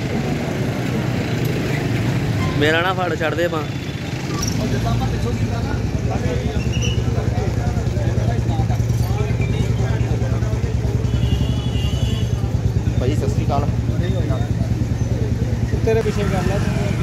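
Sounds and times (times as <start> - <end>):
people talking: 2.6 - 17.0.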